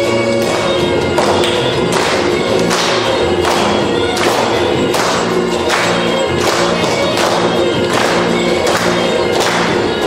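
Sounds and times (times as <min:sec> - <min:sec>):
live folk dance music: 0:00.0 - 0:10.0
regular struck beat: 0:00.0 - 0:10.0.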